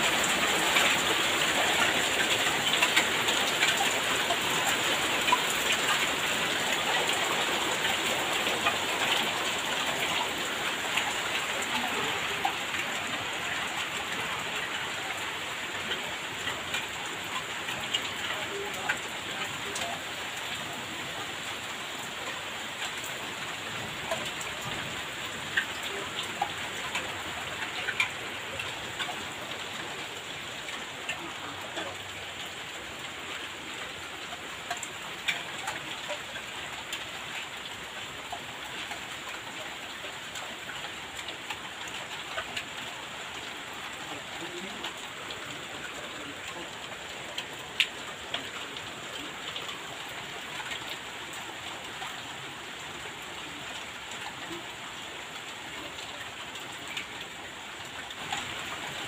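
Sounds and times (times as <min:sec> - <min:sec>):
heavy rain on concrete: 0:00.0 - 0:59.0.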